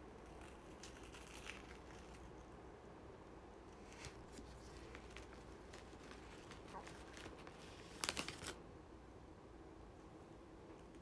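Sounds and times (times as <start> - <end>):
faint room hum: 0.0 - 11.0
snack packet rustling: 3.9 - 8.6.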